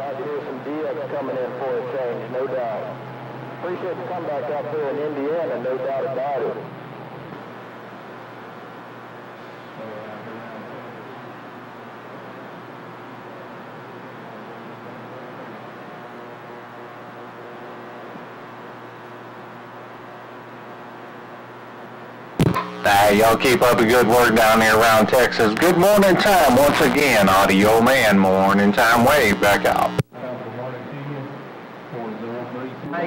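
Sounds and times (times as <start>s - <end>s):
radio static hiss: 0.0s - 33.0s
radio speech: 3.6s - 6.7s, 22.4s - 30.1s
radio click and burst: 22.4s - 30.1s.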